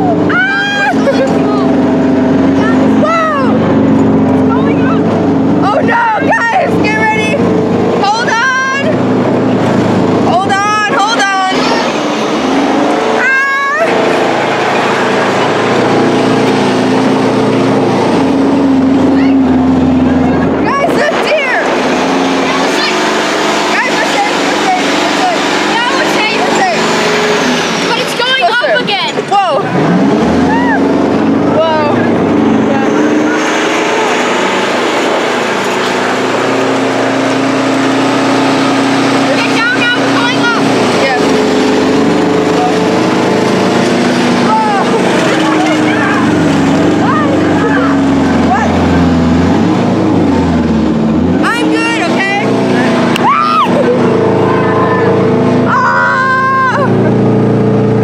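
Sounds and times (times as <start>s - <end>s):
tank engine running: 0.0s - 58.0s.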